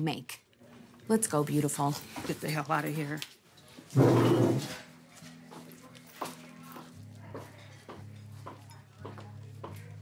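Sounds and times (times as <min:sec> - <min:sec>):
soft low music underscore: 0:00.0 - 0:10.0.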